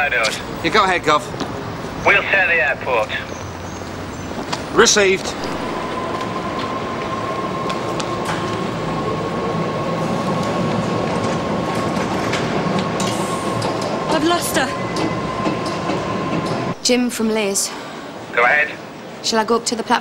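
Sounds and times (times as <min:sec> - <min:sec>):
train whine: 0:00.0 - 0:19.4
train rumble: 0:00.0 - 0:20.0.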